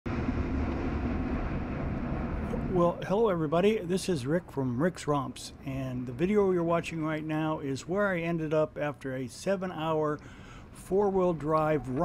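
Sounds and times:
low rumble: 0:00.0 - 0:08.4.

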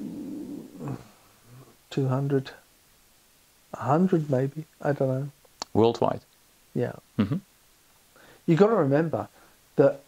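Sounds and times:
faint murmurs: 0:00.0 - 0:01.8, 0:07.2 - 0:07.4
man speaking: 0:01.6 - 0:02.6, 0:03.8 - 0:06.2, 0:06.8 - 0:07.4, 0:08.5 - 0:10.0.

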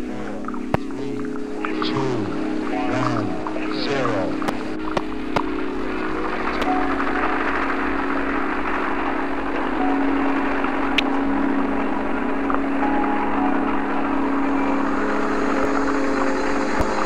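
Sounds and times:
droning held chord: 0:00.0 - 0:17.0
noisy rush: 0:00.0 - 0:17.0.

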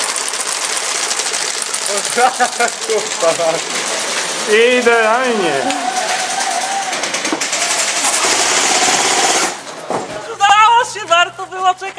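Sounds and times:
loud rapid clicking rattle: 0:00.0 - 0:05.1, 0:05.9 - 0:09.7.

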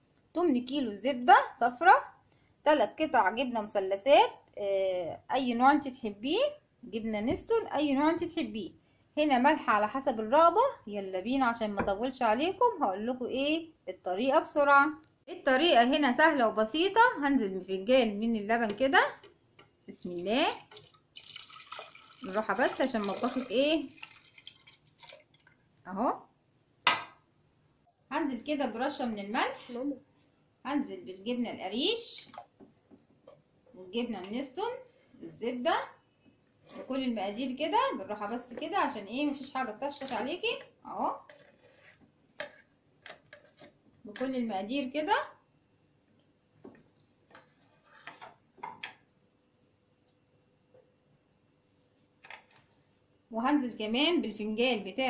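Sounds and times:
milk pouring trickle: 0:20.0 - 0:25.7
spatula scraping blender jar: 0:36.6 - 0:37.1, 0:41.2 - 0:42.7.

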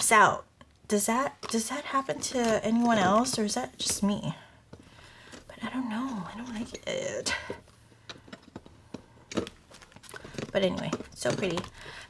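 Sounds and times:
envelope clicks and rustles: 0:08.2 - 0:12.0.

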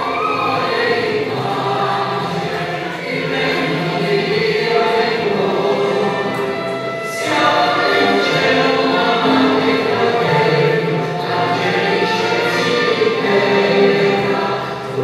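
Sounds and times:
choir singing through speakers: 0:00.0 - 0:15.0.

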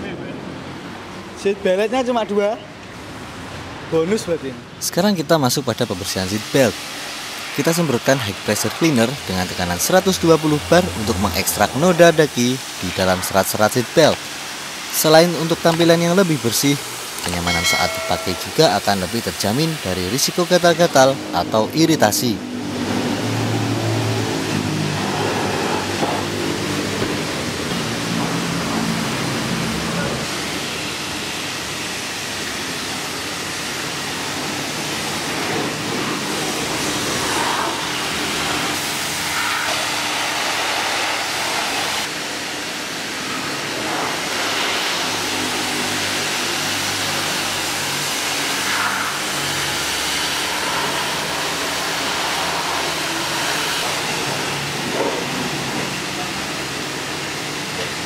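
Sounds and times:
pressure washer spraying water: 0:06.2 - 0:21.3, 0:22.6 - 0:58.0.

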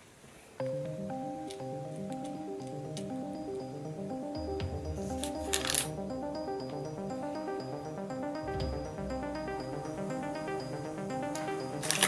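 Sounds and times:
background music: 0:00.6 - 0:12.0.

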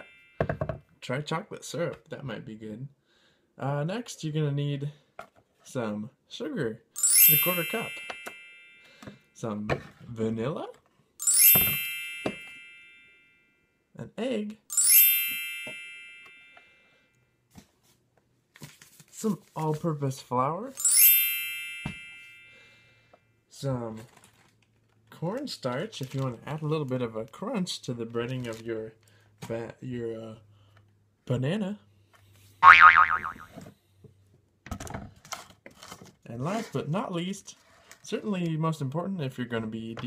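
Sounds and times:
metallic bell-like ding: 0:00.0 - 0:00.4, 0:07.0 - 0:09.1, 0:11.2 - 0:13.4, 0:14.7 - 0:16.8, 0:20.8 - 0:22.8
cartoon boing: 0:32.6 - 0:33.6.

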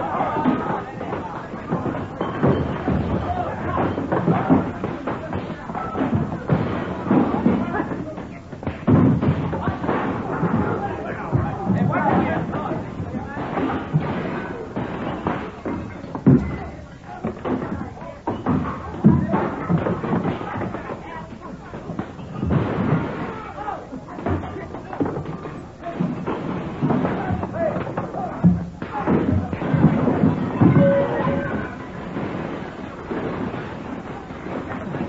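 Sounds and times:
heavy thuds of blows: 0:00.0 - 0:35.0
voices: 0:00.0 - 0:35.0.

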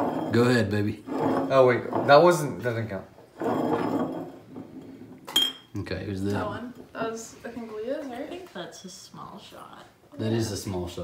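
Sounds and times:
glass bottle spinning on wood: 0:00.0 - 0:05.7.

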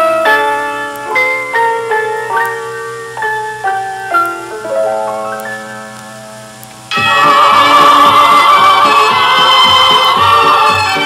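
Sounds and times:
pop band playing: 0:06.9 - 0:11.0.

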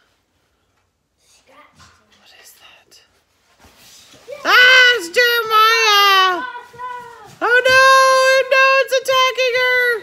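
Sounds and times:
faint whispering: 0:01.3 - 0:03.2.

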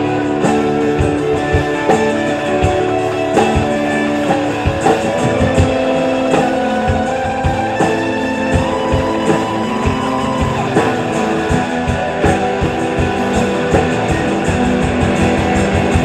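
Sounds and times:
bass guitar: 0:00.0 - 0:16.0
drum kit steady beat: 0:00.0 - 0:16.0
electric guitar lines: 0:00.0 - 0:16.0.

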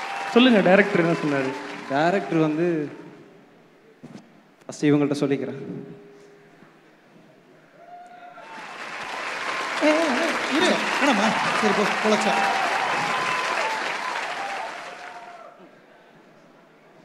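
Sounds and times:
audience cheering: 0:00.0 - 0:03.0, 0:07.8 - 0:15.6
audience clapping: 0:00.0 - 0:03.0, 0:08.4 - 0:15.5.

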